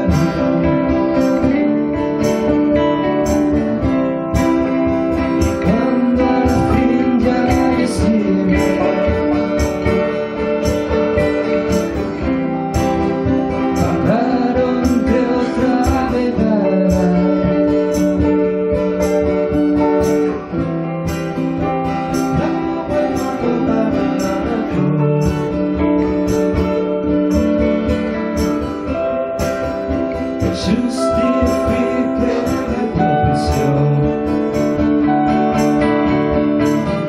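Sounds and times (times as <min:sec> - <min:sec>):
acoustic guitars strumming: 0:00.0 - 0:37.0.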